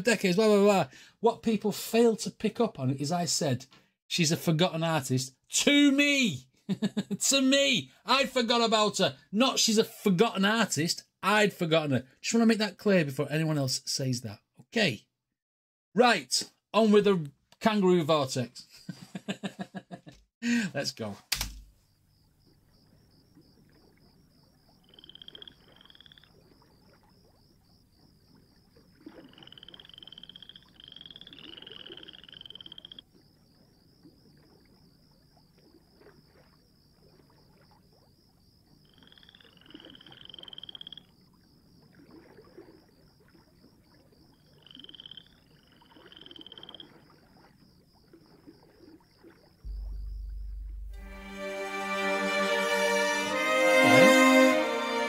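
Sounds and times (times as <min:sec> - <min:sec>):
frogs croaking: 0:21.8 - 0:51.8
high pulsing trill: 0:49.7 - 0:51.9.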